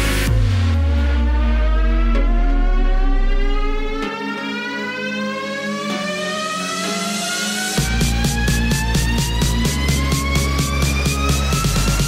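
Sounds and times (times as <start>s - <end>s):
low bass: 0.0s - 4.2s, 7.8s - 12.0s
steady dance beat: 0.0s - 12.0s
synth sweep rising in pitch: 0.0s - 12.0s.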